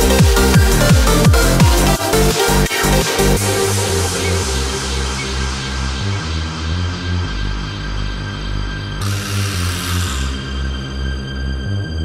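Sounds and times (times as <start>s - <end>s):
dance music with synth bass: 0.0s - 8.1s.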